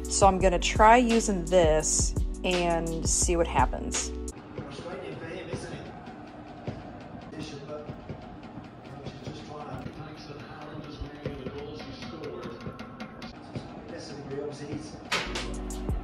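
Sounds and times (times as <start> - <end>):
sports commentator talking: 8.8 - 12.8.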